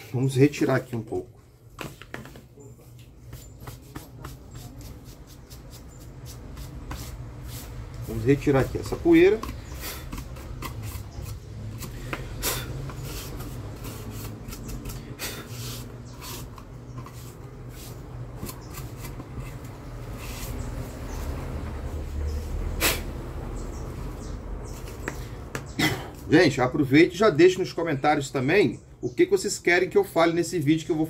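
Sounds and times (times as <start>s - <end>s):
stiff brush scrubbing plastic: 3.2s - 20.8s.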